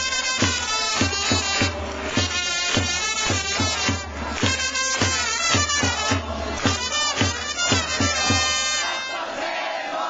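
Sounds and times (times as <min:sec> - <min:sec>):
trumpets and drum playing: 0:00.0 - 0:09.6
crowd shouting and cheering: 0:00.0 - 0:10.0.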